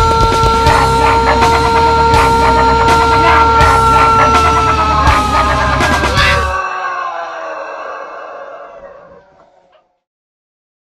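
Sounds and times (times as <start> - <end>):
rooster crowing: 0.0 - 10.0.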